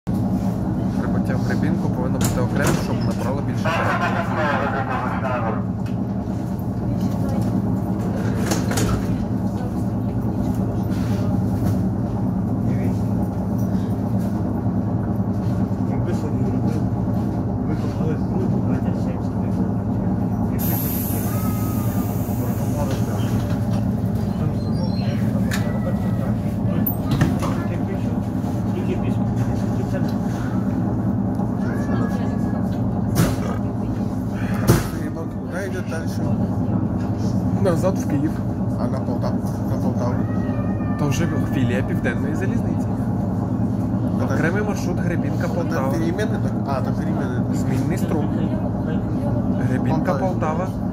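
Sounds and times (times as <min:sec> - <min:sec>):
electric train hum: 0:00.1 - 0:50.9.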